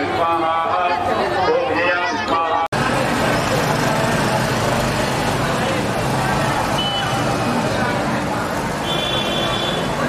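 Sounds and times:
traffic noise: 0.0 - 10.0.

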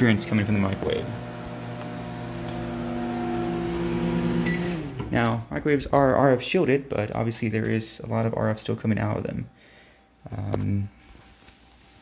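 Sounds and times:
microwave oven humming: 0.0 - 5.2.

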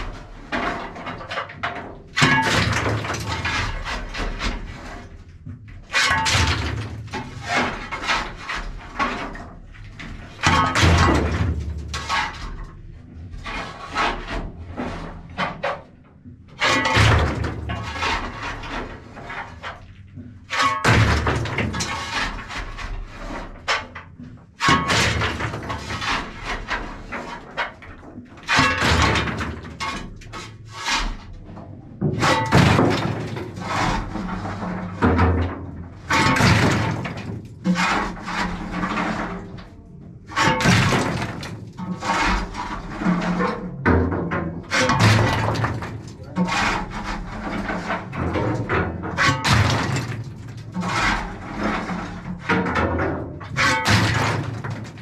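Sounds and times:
clattering and knocking on metal: 0.0 - 55.0.

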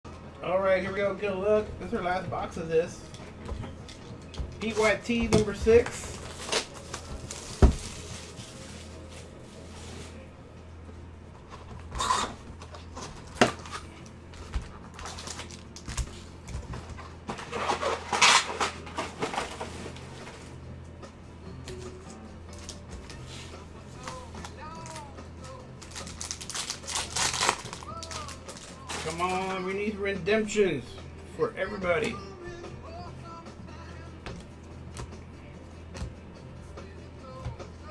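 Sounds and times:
low background hum: 0.0 - 37.9
foil packs crinkling: 4.6 - 10.2, 14.8 - 16.3, 24.0 - 29.8
knocks on cardboard box: 7.6 - 7.9.

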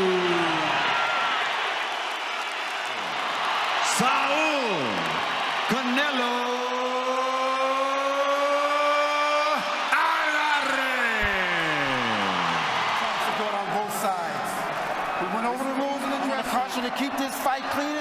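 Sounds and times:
crowd roaring: 0.0 - 18.0.

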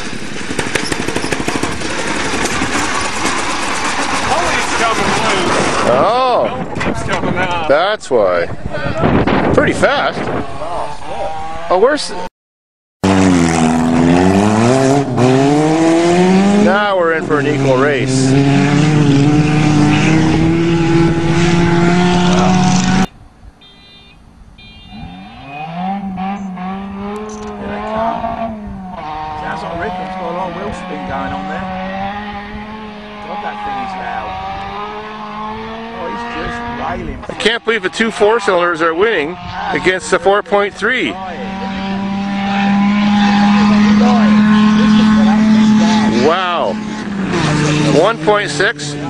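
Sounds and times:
steady rushing noise: 0.0 - 12.0
car engine revving past: 10.2 - 12.2, 13.0 - 23.1, 24.9 - 49.0.

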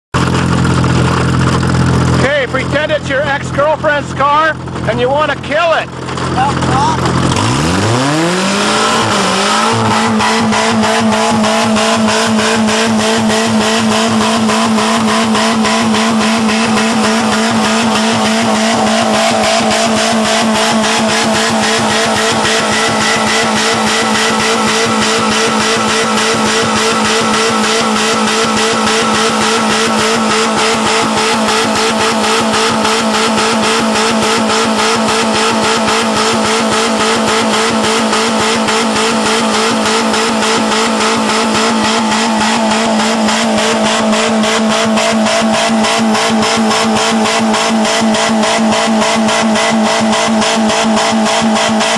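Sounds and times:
car engine revving high: 0.2 - 51.9.

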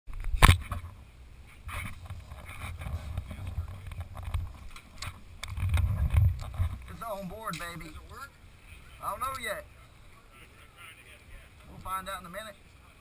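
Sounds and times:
wind rumble on microphone: 0.1 - 7.1
camera handling knocks and rubbing: 1.6 - 6.9.

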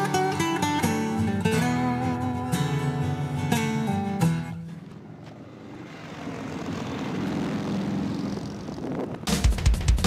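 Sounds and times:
motorcycle engine rumble: 2.2 - 10.0.

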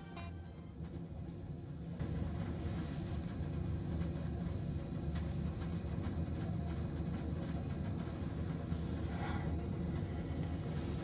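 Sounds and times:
cable car gondola rumbling: 0.0 - 11.0.

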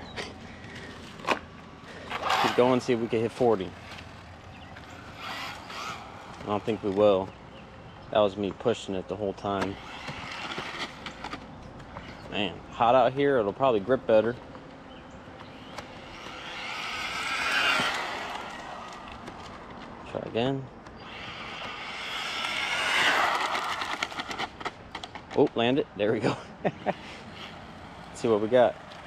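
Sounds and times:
rc car rasping whine: 0.0 - 25.4, 26.9 - 29.0.

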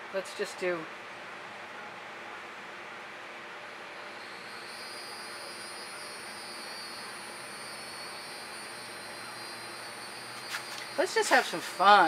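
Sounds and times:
outdoor background noise: 0.0 - 12.0
insects droning: 3.2 - 12.0.

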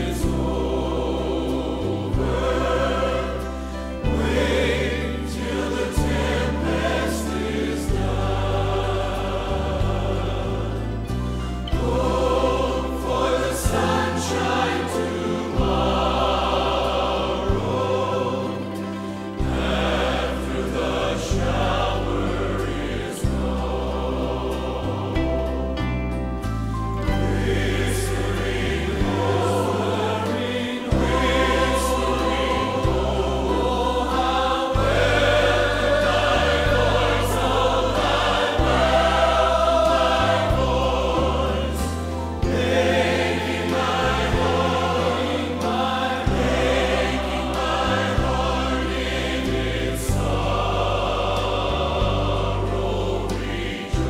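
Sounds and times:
choir-like sustained sound: 0.0 - 54.0
piano with sustained bass notes: 0.0 - 54.0.

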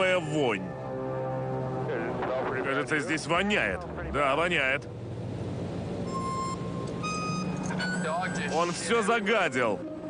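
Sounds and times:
piston aircraft engines droning: 0.0 - 10.0.

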